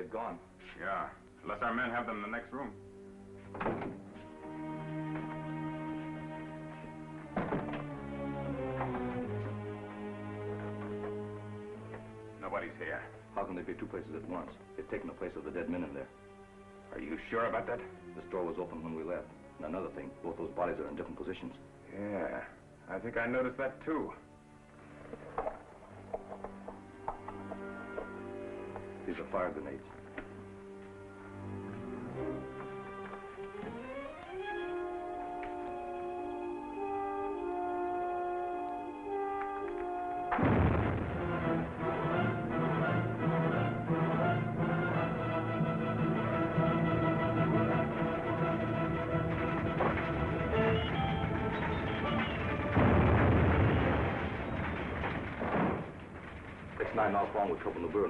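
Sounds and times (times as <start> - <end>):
dramatic orchestral music: 0.0 - 55.8
loud explosion: 40.3 - 42.2, 51.5 - 57.3.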